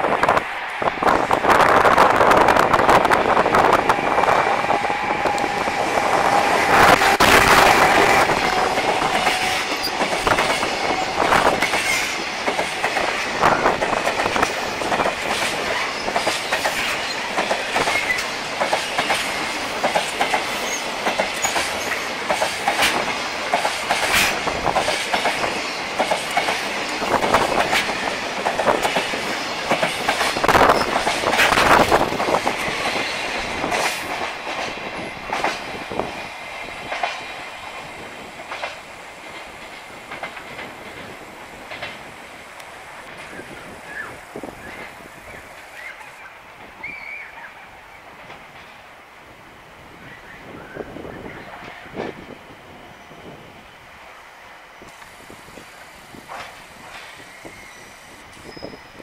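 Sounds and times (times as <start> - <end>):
freight train rolling past: 0.0 - 59.0
wheels clacking over rail joints: 4.7 - 43.5.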